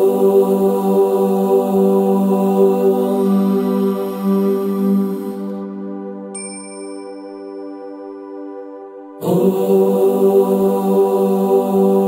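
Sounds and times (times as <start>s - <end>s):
person chanting om: 0.0s - 6.4s, 9.1s - 12.0s
high chime: 6.3s - 8.5s.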